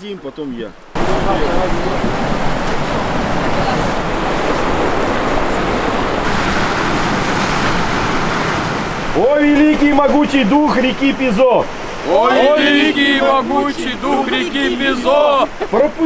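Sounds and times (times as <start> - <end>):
river rushing over rapids: 0.9 - 16.0.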